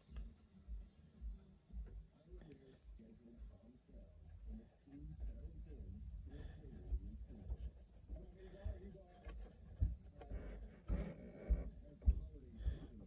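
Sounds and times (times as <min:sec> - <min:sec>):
paintbrush scratching on plastic: 0:01.8 - 0:13.0.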